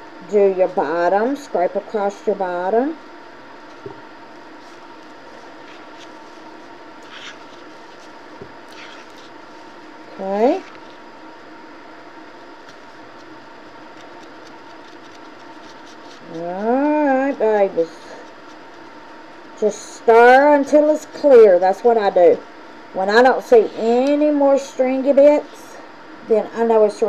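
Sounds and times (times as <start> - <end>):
air purifier fan humming: 0.0 - 27.0.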